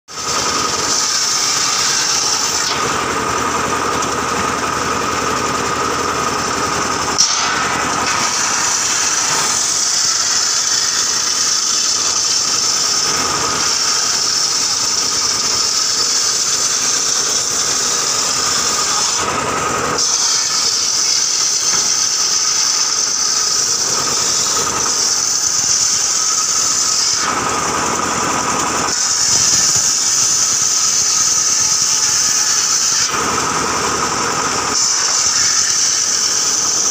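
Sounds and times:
circular saw cutting wood: 0:00.1 - 0:36.9
sharp click: 0:07.2 - 0:08.4.

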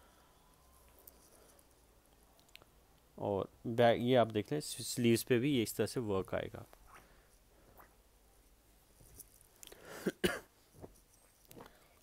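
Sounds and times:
man clearing his throat: 0:10.0 - 0:10.5.

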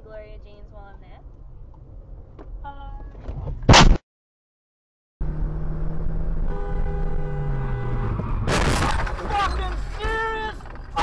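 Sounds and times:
car road and engine noise: 0:00.0 - 0:03.8, 0:05.2 - 0:11.0
car horn sounding: 0:06.4 - 0:08.4.

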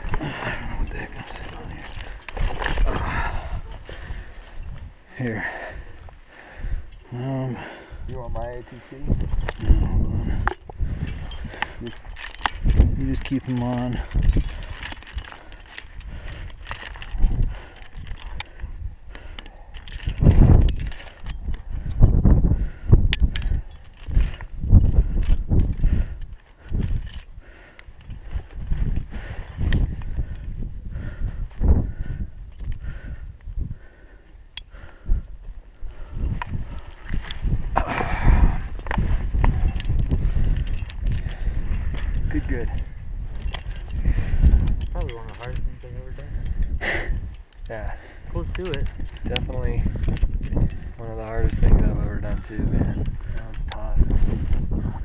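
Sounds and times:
metal climbing gear clinking: 0:00.0 - 0:55.0
wind buffeting microphone: 0:00.0 - 0:55.0.

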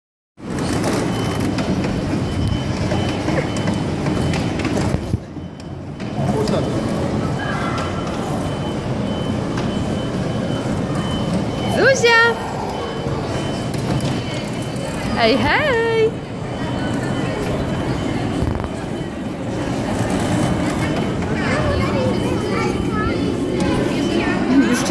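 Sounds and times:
kiddie train ride rumbling: 0:00.4 - 0:24.9
child's voice: 0:21.4 - 0:24.1.

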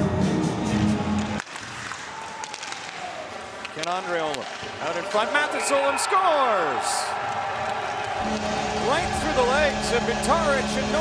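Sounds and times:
crowd noise: 0:03.0 - 0:11.0.

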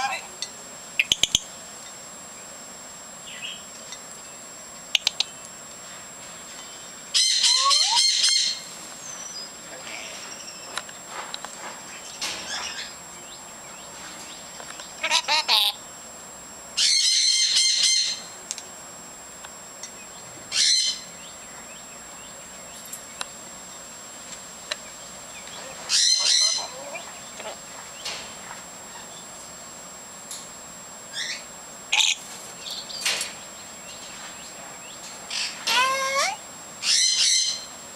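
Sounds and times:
lorikeets chattering: 0:00.0 - 0:01.6, 0:03.2 - 0:05.5, 0:06.6 - 0:11.0, 0:11.9 - 0:15.8, 0:16.8 - 0:18.4, 0:19.8 - 0:23.9, 0:24.7 - 0:29.4, 0:31.0 - 0:37.8
parrot chattering calls: 0:07.1 - 0:08.7, 0:15.0 - 0:15.8, 0:16.8 - 0:18.4, 0:20.5 - 0:21.1, 0:25.6 - 0:27.6, 0:31.1 - 0:32.2, 0:35.3 - 0:37.7
parrot harsh call: 0:07.1 - 0:08.7, 0:15.0 - 0:15.8, 0:25.6 - 0:27.6, 0:31.1 - 0:32.2, 0:35.3 - 0:37.7.

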